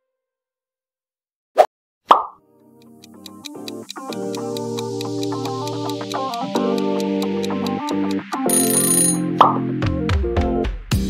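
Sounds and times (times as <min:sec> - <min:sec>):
background music with ticking beat: 0:02.8 - 0:11.0.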